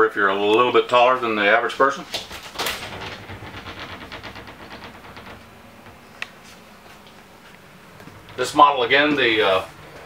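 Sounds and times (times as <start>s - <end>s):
sliding shower door clattering: 2.1s - 9.7s.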